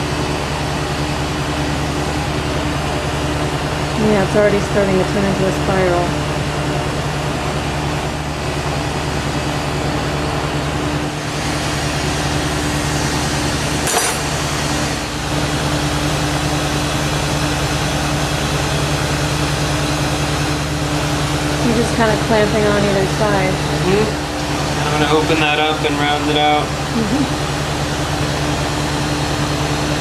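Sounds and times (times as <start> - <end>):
torch flame roaring: 0.0 - 30.0.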